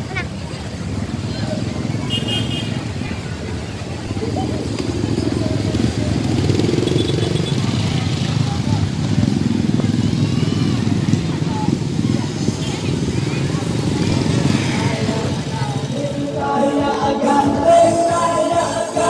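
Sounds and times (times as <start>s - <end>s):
crowd chatter: 0.0s - 19.0s
motorcycle engines running: 0.0s - 19.0s.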